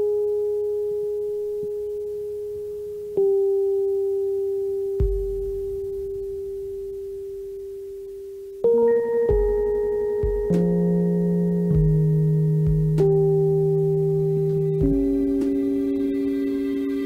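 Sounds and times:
ambient music sustained tones: 0.0s - 17.0s.

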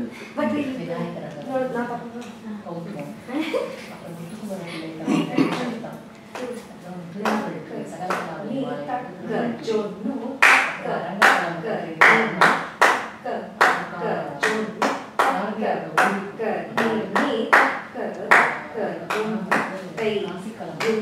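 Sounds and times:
hand claps: 7.2s - 8.3s, 12.0s - 15.4s.

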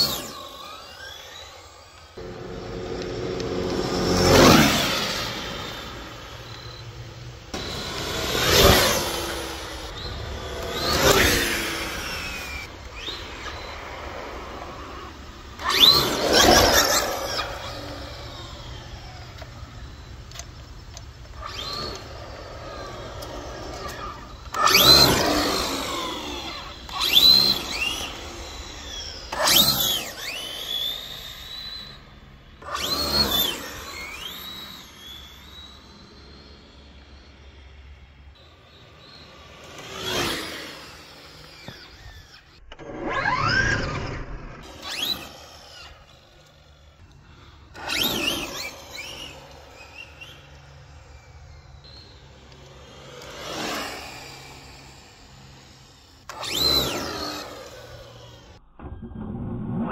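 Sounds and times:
electric motor whining: 0.0s - 59.3s.

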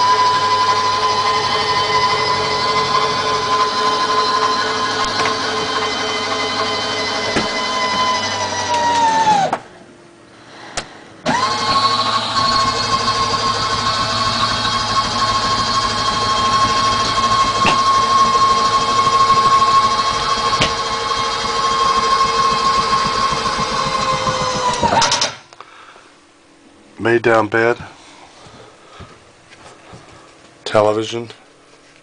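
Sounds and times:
electric motor whining: 0.0s - 9.6s, 11.2s - 25.5s.

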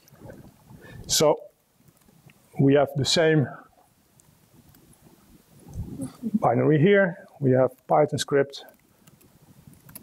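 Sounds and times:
person speaking: 5.8s - 8.8s.

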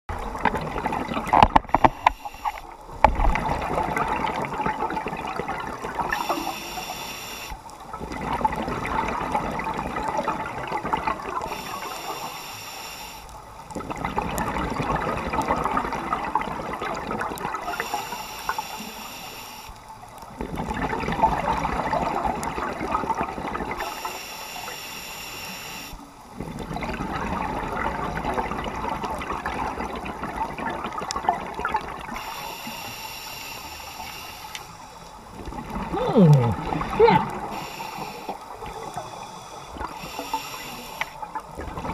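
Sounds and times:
scuba regulator inhale hiss: 1.7s - 2.7s, 6.1s - 7.6s, 11.5s - 13.3s, 17.7s - 19.8s, 23.8s - 26.0s, 32.1s - 35.1s, 37.4s - 41.2s
exhaled bubbles rushing: 2.9s - 6.2s, 7.9s - 11.5s, 20.4s - 23.8s, 35.3s - 37.6s.

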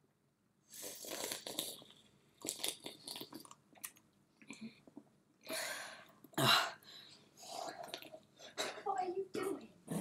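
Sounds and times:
person gulping and slurping drink: 0.7s - 5.1s, 7.5s - 8.3s.

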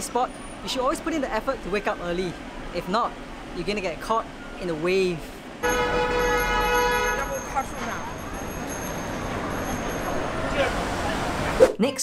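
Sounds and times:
passing traffic: 0.0s - 11.8s
car horn blast: 5.6s - 8.2s.

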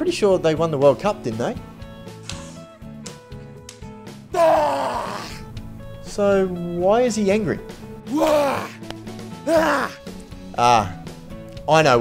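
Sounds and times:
background music: 0.0s - 12.0s
man shouting hoarsely: 4.3s - 5.4s, 8.1s - 8.8s, 9.4s - 10.0s.

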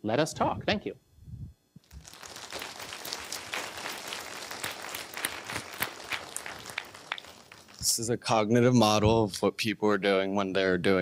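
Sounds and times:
audience applauding: 1.9s - 8.0s.

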